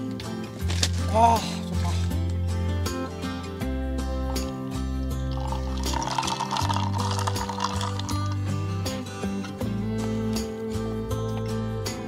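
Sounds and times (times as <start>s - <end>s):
instrumental music with bass: 0.0s - 12.0s
clinking fizzing: 5.3s - 8.4s.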